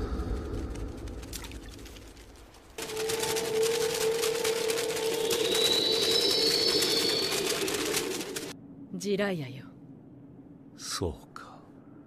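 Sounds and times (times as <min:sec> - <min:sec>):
sustained drone: 0:02.8 - 0:08.9.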